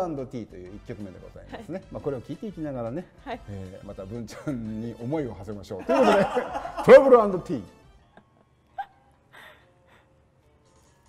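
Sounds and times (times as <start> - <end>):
stifled laughter: 5.8 - 7.0.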